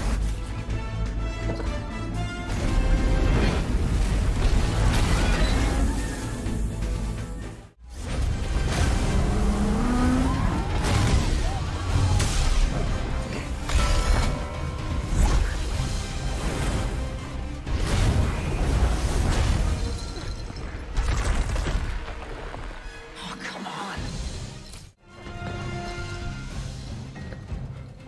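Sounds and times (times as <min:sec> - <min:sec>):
action film music score: 0:00.0 - 0:28.0.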